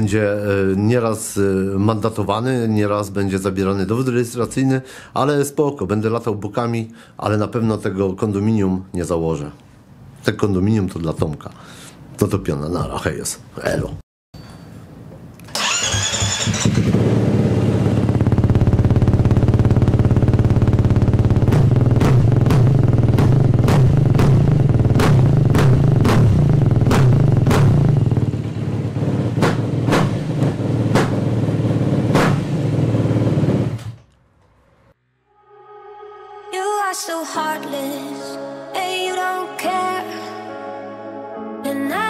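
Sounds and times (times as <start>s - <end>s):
motorcycle engine revving: 15.5s - 34.1s.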